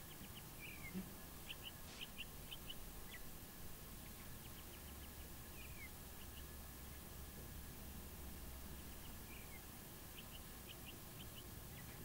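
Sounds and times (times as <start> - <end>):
faint steady hum: 0.0 - 12.0
small birds chirping: 0.0 - 12.0.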